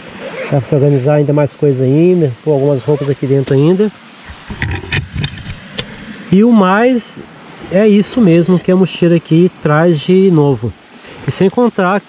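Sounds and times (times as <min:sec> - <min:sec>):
zipper pulls and buckles clicking: 0:00.1 - 0:00.8
backpack fabric rustling: 0:00.1 - 0:01.0.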